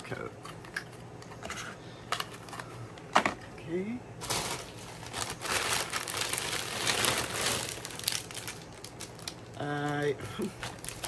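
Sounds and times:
plastic bag crinkling and rustling: 0:04.2 - 0:11.0.

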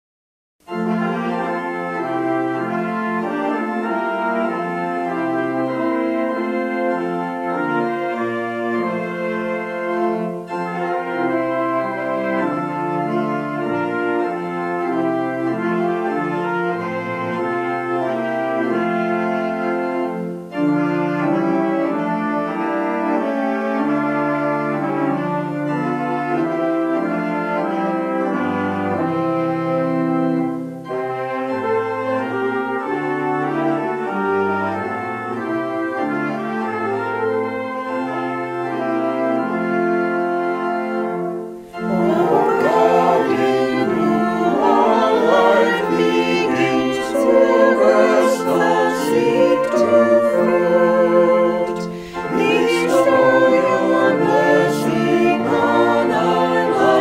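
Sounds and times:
alto saxophone: 0:00.6 - 0:57.0
organ: 0:00.6 - 0:57.0
trumpets: 0:00.6 - 0:57.0
people singing a hymn: 0:00.7 - 0:39.7, 0:41.0 - 0:57.0.

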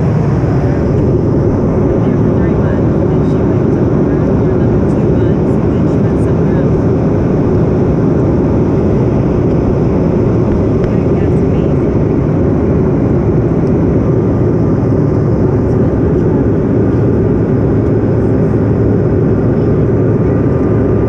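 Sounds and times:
airliner cabin engine rush: 0:00.0 - 0:21.0.

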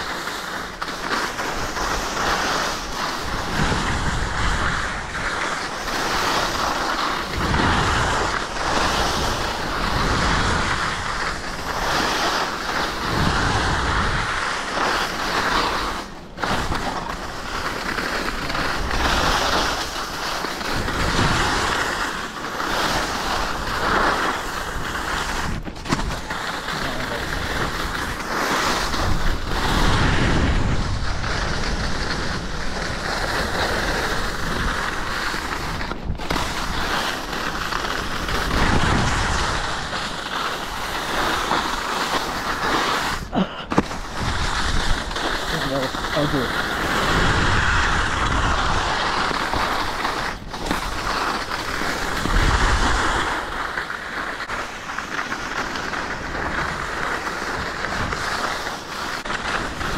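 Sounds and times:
skis carving on packed snow: 0:00.0 - 0:59.9
wind on microphone: 0:01.5 - 0:17.6, 0:18.3 - 0:22.0, 0:23.0 - 0:41.8, 0:42.4 - 0:54.6.

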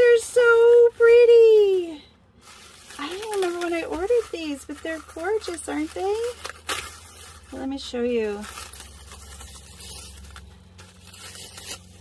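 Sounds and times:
plastic packaging crinkling: 0:00.0 - 0:12.0.

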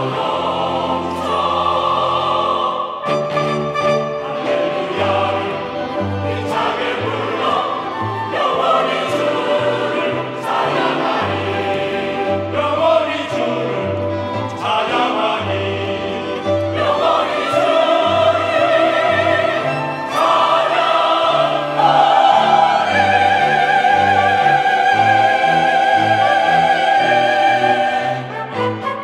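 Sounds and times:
choir singing a hymn: 0:00.0 - 0:29.0
small orchestra playing: 0:00.0 - 0:29.0.

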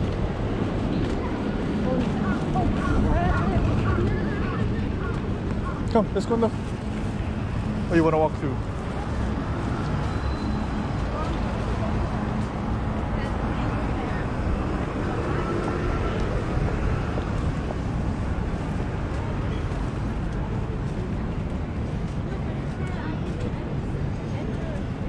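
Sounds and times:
faint indistinct voices: 0:00.0 - 0:25.0
road traffic rumble: 0:00.0 - 0:25.0.

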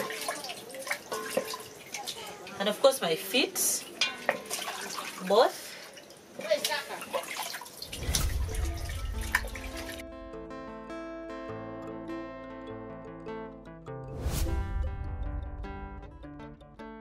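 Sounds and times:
splashing water in metal basin: 0:00.0 - 0:02.7, 0:03.4 - 0:10.0
background music: 0:08.0 - 0:17.0.

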